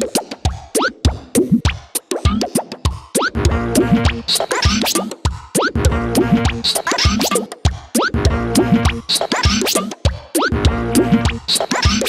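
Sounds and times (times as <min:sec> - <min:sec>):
electronic music with sliding notes: 0:03.2 - 0:12.0.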